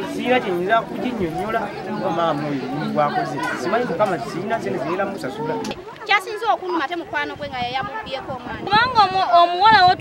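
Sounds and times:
man talking: 0.0 - 5.7.

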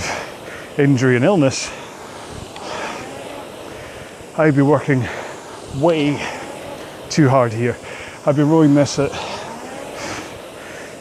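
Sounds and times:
rowing machine flywheel whooshing: 0.0 - 11.0.

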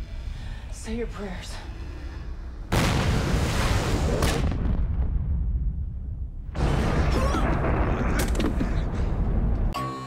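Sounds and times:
deep rumbling explosion: 2.7 - 9.6.

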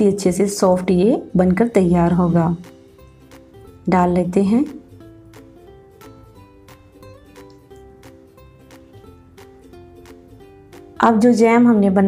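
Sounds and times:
light steady beat: 1.9 - 11.0
plucked string music: 2.1 - 11.4.

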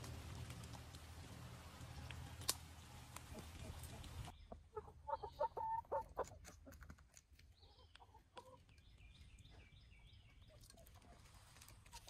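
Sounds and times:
chickens clucking: 1.8 - 12.0.

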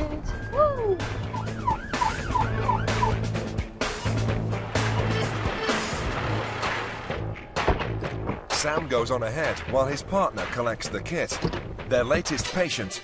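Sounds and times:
emergency siren yelping: 0.2 - 3.4.

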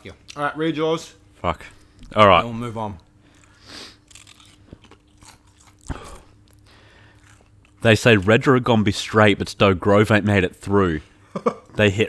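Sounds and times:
person chewing crunchy snack: 3.2 - 7.8.

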